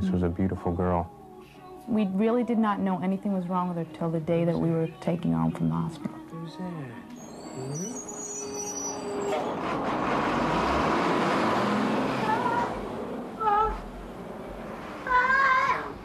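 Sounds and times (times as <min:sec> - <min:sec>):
high wavering cries: 0:07.2 - 0:09.4, 0:12.1 - 0:14.0, 0:15.0 - 0:16.0
truck driving past: 0:07.2 - 0:16.0
city street traffic: 0:07.4 - 0:16.0.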